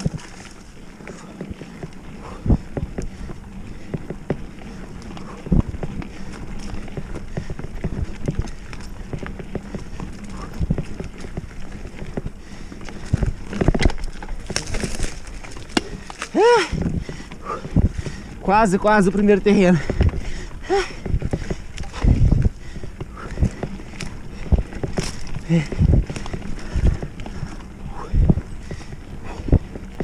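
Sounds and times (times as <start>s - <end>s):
bike rattling over bumps: 0.0s - 30.0s
bike tyres rolling on dirt: 0.0s - 30.0s.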